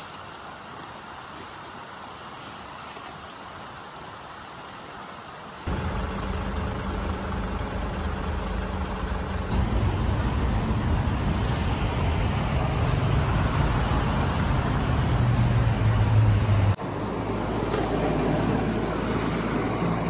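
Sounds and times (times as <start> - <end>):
street traffic: 3.2 - 20.0
heavy vehicle engine droning: 5.7 - 20.0.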